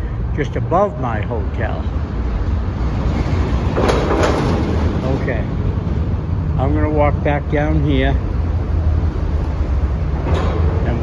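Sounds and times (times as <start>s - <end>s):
traffic rumble in tunnel: 0.0s - 11.0s.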